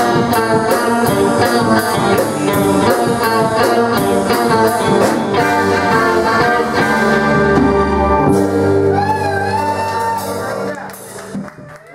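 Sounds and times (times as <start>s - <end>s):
live band sustained chord: 0.0s - 9.6s.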